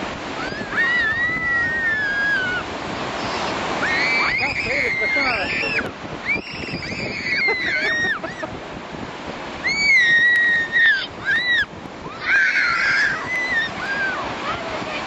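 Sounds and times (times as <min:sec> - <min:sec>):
waves breaking: 0:00.0 - 0:15.0
children shrieking: 0:00.4 - 0:08.5, 0:09.6 - 0:15.0.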